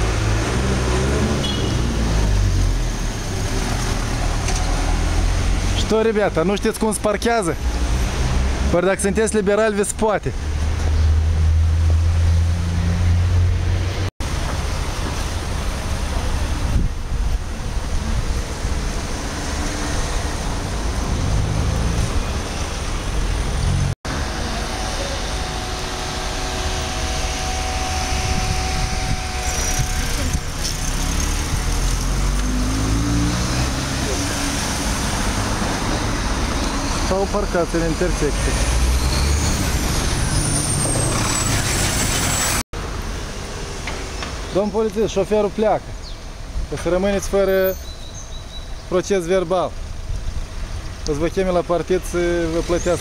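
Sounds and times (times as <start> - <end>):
car engines passing: 0.0 - 47.8
low traffic rumble: 0.0 - 53.0.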